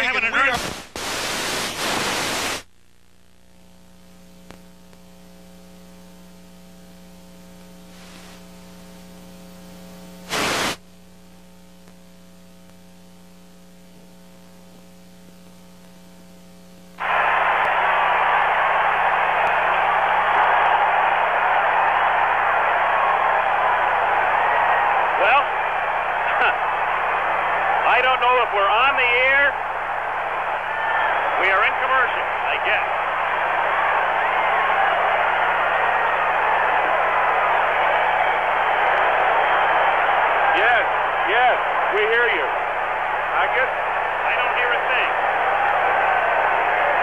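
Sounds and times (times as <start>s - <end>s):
static hiss: 0.0s - 29.1s
static crackle: 0.0s - 47.0s
low electrical hum: 2.6s - 44.2s.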